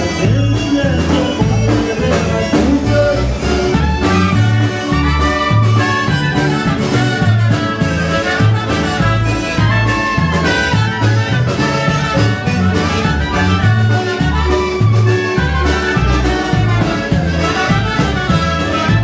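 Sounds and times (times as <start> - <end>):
polka band playing: 0.0 - 19.0.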